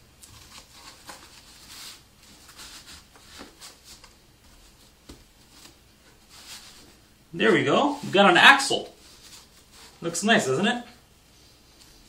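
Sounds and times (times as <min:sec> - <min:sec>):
cardboard tube being handled: 0:00.2 - 0:10.0
diapers rustling: 0:00.2 - 0:10.0.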